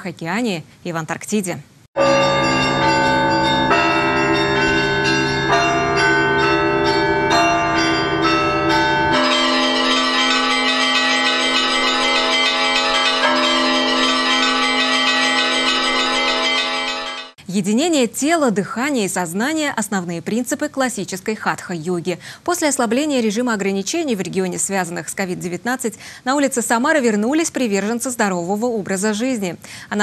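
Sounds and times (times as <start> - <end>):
church bells pealing: 2.0 - 17.4.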